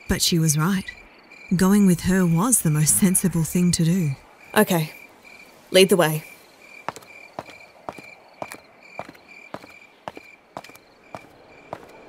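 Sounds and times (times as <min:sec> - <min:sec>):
crickets chirping: 0:00.0 - 0:12.0
footsteps walking: 0:06.9 - 0:12.0.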